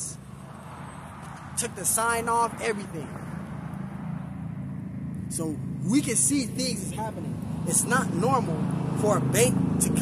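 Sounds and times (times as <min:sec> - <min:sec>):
traffic engine rumble: 0:00.0 - 0:10.0.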